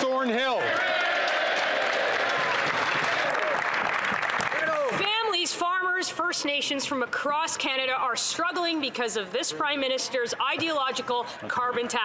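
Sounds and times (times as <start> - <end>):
crowd clapping: 0.5 - 5.0.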